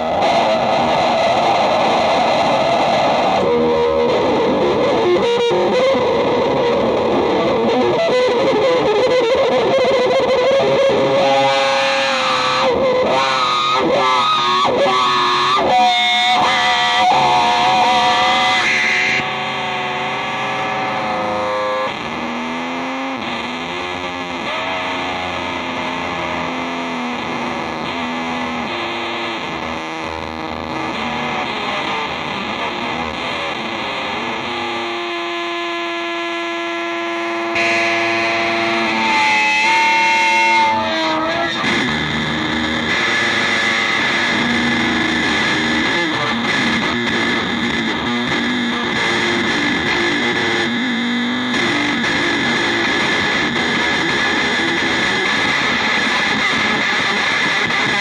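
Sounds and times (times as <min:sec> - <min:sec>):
distorted electric guitar: 0:00.0 - 0:58.0
held guitar note with overtones: 0:00.0 - 0:58.0.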